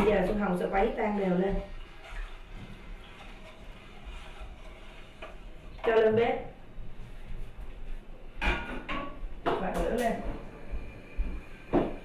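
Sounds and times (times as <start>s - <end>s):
faint stirring in a pot: 0.0s - 12.0s.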